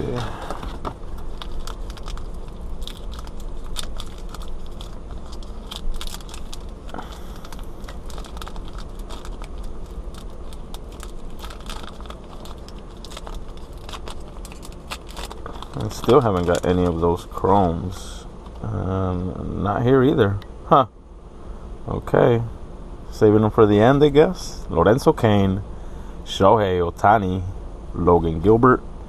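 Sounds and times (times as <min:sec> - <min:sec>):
steady low hum: 0:00.0 - 0:29.0
wrapper crinkling as torn open: 0:00.1 - 0:17.4.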